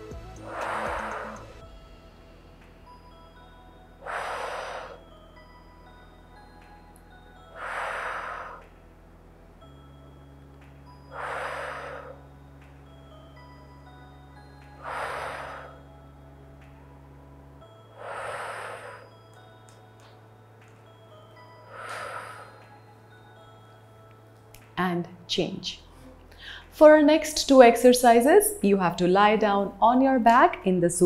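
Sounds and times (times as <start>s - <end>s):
soft background music: 0.0s - 31.0s
woman exhaling forcefully: 4.0s - 5.0s, 7.6s - 8.6s, 11.1s - 12.2s, 14.8s - 15.8s.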